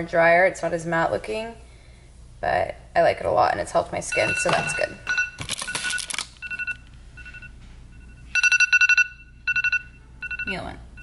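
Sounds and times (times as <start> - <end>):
phone alarm two-tone chime: 4.1 - 11.0
rapid beeps: 4.1 - 11.0.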